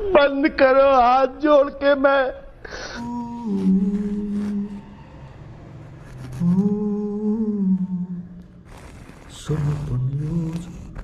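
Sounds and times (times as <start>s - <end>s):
person humming: 3.0s - 4.9s, 6.3s - 11.0s.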